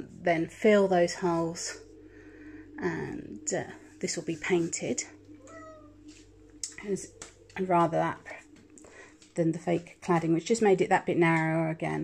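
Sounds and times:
cat meowing: 0:05.5 - 0:05.9.

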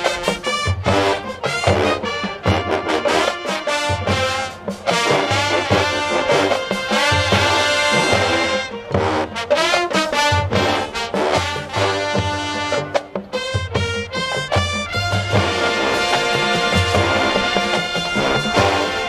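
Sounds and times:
drums: 0:00.0 - 0:19.0
trumpets and trombones: 0:00.0 - 0:19.0.

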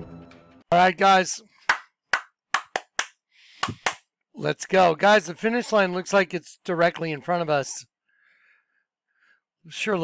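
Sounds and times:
man clapping hands: 0:01.6 - 0:04.0.

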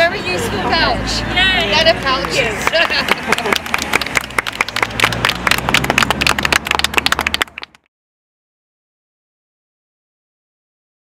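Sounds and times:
group clapping hands: 0:02.0 - 0:07.9
people laughing: 0:02.8 - 0:04.1.

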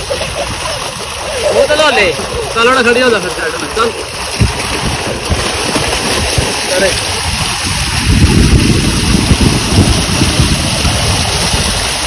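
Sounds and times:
water gushing from a pipe: 0:00.0 - 0:12.0
water splashing into a channel: 0:00.0 - 0:12.0.

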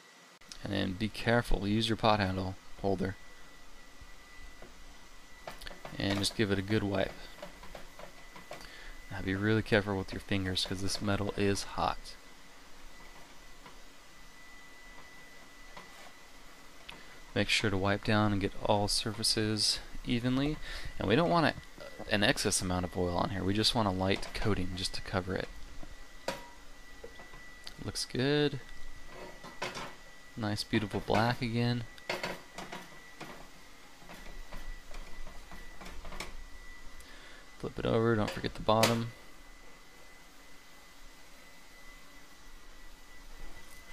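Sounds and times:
thin high whine: 0:00.0 - 0:43.9.

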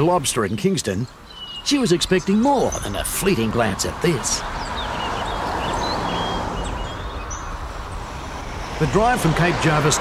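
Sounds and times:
small birds chirping: 0:00.0 - 0:10.0
vehicle tyre and road noise: 0:01.0 - 0:10.0.

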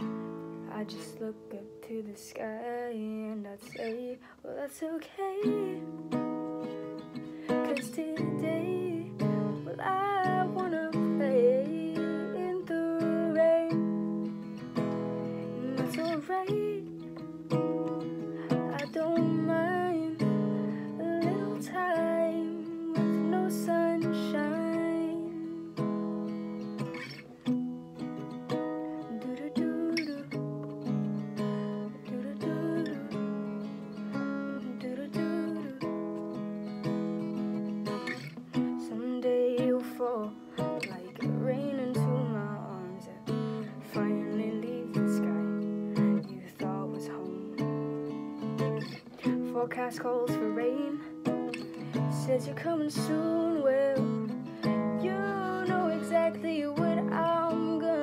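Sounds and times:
acoustic guitar strumming: 0:00.0 - 0:04.3, 0:05.1 - 0:58.0.

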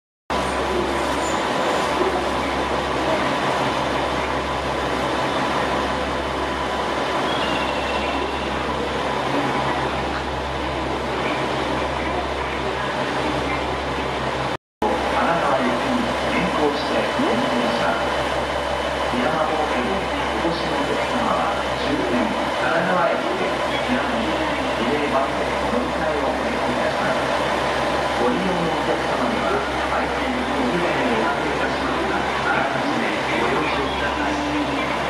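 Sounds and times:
diesel railcar engine idling: 0:00.3 - 0:35.0.

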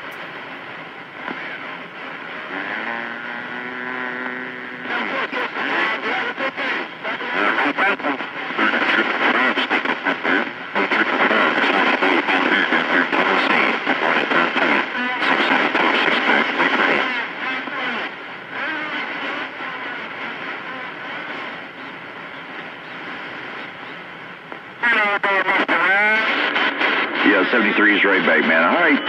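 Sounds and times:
garbled radio voice: 0:00.0 - 0:29.0
radio static: 0:00.0 - 0:29.0.

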